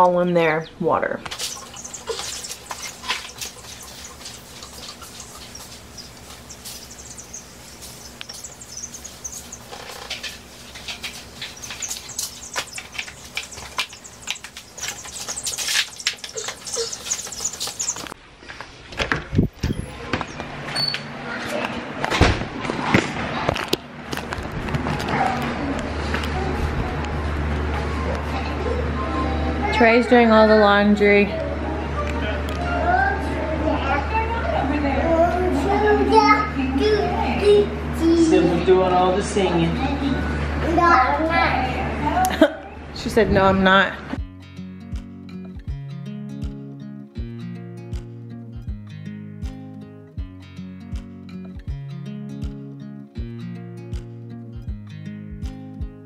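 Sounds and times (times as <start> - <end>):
steady low hum: 0.1 - 18.4
baby chicks peeping: 0.4 - 18.2.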